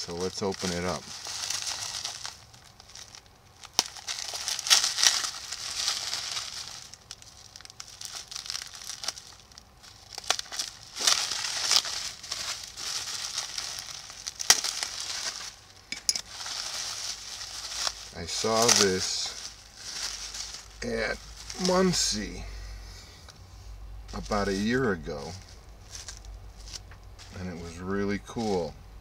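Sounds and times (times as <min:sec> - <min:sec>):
bubble wrap crinkling: 0:00.0 - 0:29.0.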